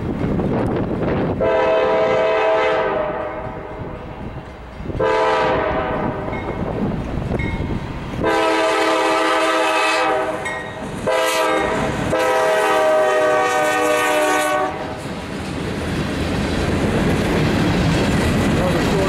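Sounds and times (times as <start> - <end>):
locomotive air horn blasts: 1.4 - 3.6, 5.0 - 6.3, 8.2 - 15.0
train wheels clicking over rail joints: 14.7 - 19.0.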